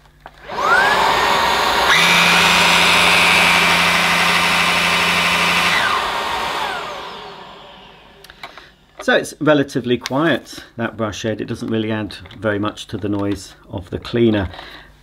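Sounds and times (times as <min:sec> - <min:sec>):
brush roll humming: 0:00.4 - 0:08.6
vacuum cleaner motor whining: 0:00.4 - 0:08.7.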